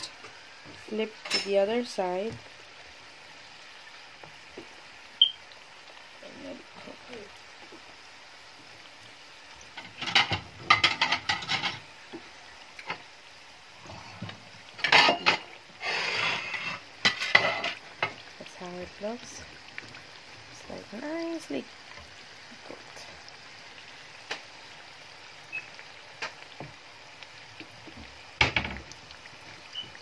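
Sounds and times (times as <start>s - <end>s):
pastries sizzling in hot oil: 0.0s - 30.0s
spatula scraping in oil: 13.9s - 18.2s.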